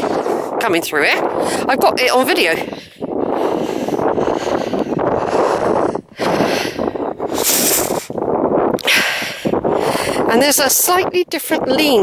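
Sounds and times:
wind noise on microphone: 0.0 - 12.0.

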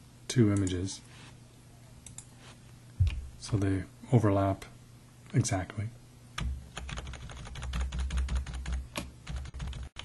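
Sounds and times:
computer keyboard keys clicking: 6.4 - 10.0.

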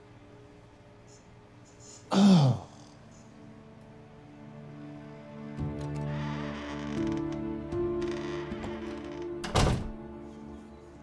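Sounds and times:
soft background music: 0.0 - 11.0
door opening and shutting: 5.6 - 10.1.

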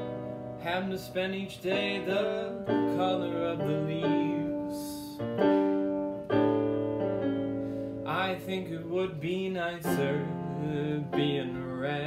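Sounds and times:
electronic piano chords: 0.0 - 12.0.

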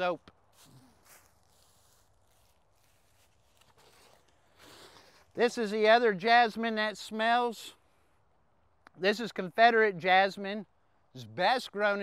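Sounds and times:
plant rustling: 0.4 - 5.4.

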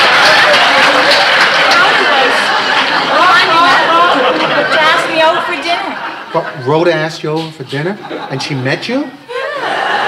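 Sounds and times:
people talking overlapping: 0.0 - 10.0.

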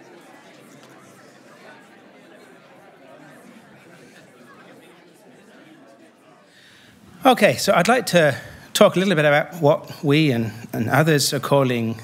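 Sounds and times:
murmur of audience voices: 0.0 - 12.0.

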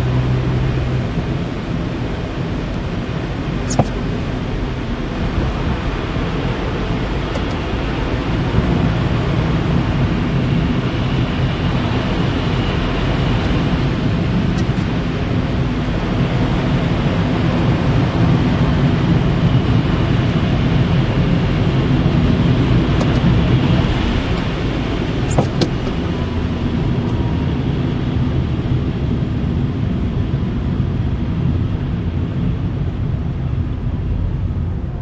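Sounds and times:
engine and tyre rumble: 0.0 - 35.0.

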